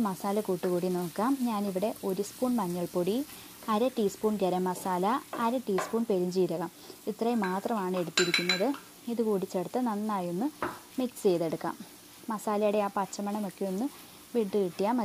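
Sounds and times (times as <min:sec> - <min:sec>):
vegetables sizzling in a frying pan: 0:00.0 - 0:15.0
woman talking: 0:00.0 - 0:15.0.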